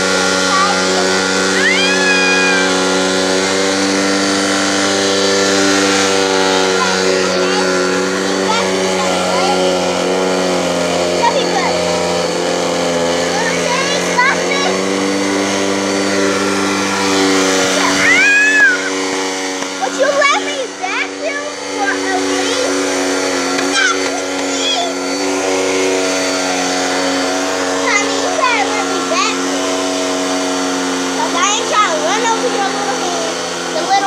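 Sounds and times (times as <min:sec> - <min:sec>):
vacuum cleaner humming: 0:00.0 - 0:34.0
baby squealing: 0:01.5 - 0:02.9, 0:18.0 - 0:19.0.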